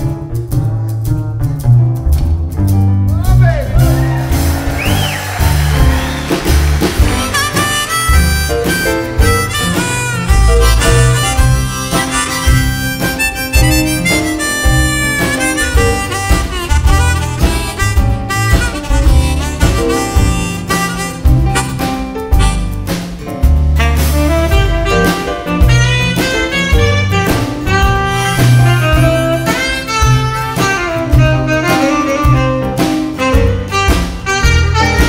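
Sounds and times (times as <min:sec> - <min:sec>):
drums: 0:00.0 - 0:35.0
upright bass: 0:00.0 - 0:35.0
harmonica solo: 0:04.7 - 0:22.8, 0:25.7 - 0:32.7.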